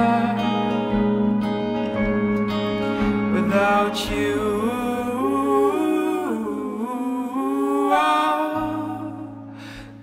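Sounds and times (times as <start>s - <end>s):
acoustic guitar: 0.0s - 10.0s.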